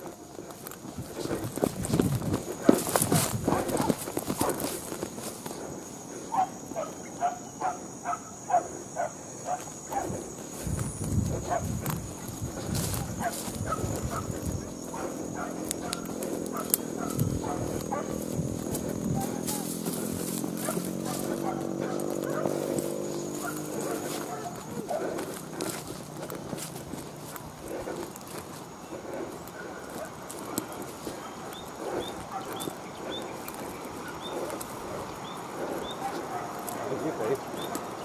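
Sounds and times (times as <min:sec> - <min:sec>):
dogs barking: 0:02.4 - 0:38.0
dogs howling: 0:02.5 - 0:10.6, 0:11.2 - 0:38.0.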